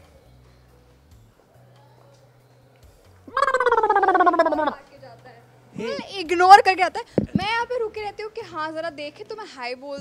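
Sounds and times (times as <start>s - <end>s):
person making drawn-out vocal sound: 3.3s - 4.8s, 5.8s - 6.0s.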